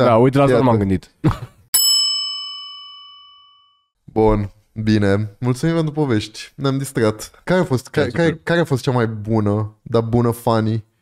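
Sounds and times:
bell-like metallic ding: 1.8 - 3.9.

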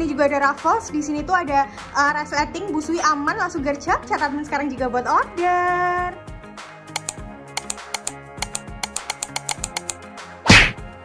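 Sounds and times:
background music: 0.0 - 11.0
rapid sharp clicks: 7.0 - 10.0.

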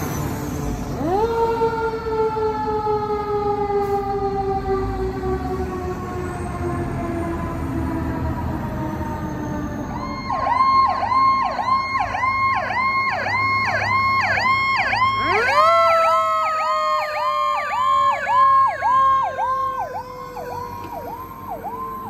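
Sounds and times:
electronic siren warbling: 8.8 - 22.0.

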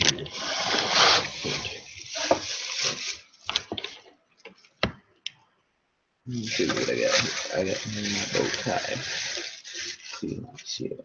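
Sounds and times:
plastic sheet rustling: 0.0 - 4.0, 6.3 - 10.9.

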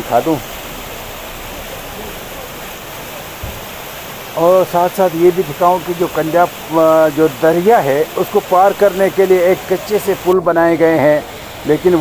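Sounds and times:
stream rushing over boulders: 0.0 - 12.0.

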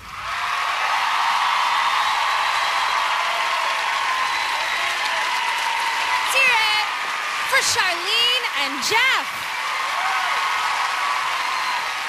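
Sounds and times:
audience applauding and cheering: 0.0 - 12.0.

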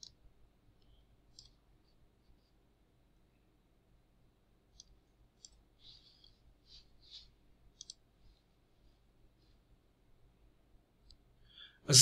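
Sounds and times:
faint mouse clicks: 0.0 - 0.2, 0.8 - 1.6, 4.7 - 8.4.

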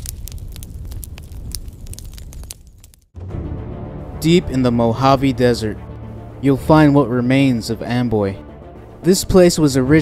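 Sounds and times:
fire rumble: 0.0 - 3.2
fire crackling: 0.0 - 9.8.

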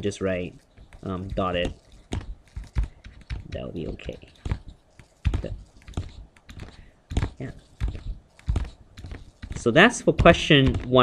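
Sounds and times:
stylus tapping on tablet screen: 0.7 - 11.0.

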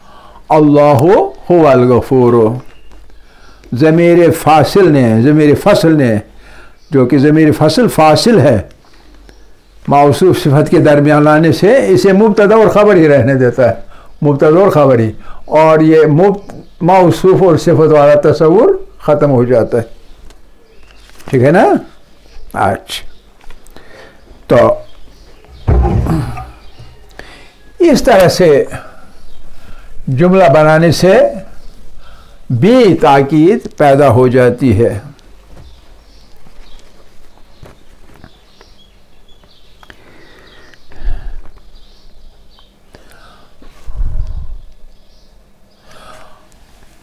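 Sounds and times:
man breathing softly: 0.0 - 0.5, 3.2 - 3.7, 6.4 - 6.8, 23.7 - 24.3, 32.0 - 32.5, 42.9 - 43.6, 45.8 - 46.5.

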